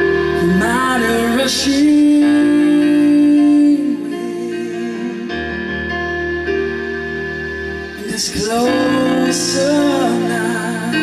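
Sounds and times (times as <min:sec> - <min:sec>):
instrumental accompaniment: 0:00.0 - 0:11.0
man singing a long note: 0:00.4 - 0:05.6, 0:08.0 - 0:11.0.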